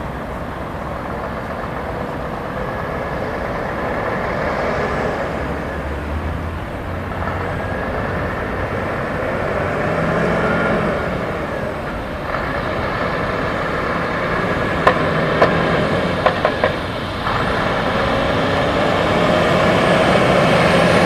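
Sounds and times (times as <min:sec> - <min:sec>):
truck diesel engine passing: 0:00.0 - 0:21.0.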